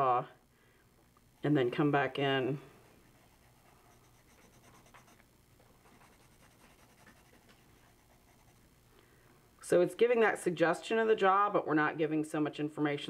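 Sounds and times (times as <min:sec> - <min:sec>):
pencil scratching on paper: 0:02.8 - 0:05.2, 0:05.8 - 0:08.6.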